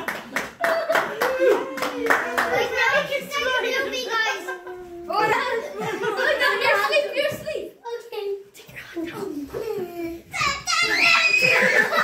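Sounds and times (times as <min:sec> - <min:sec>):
children's voices: 0:02.1 - 0:12.0.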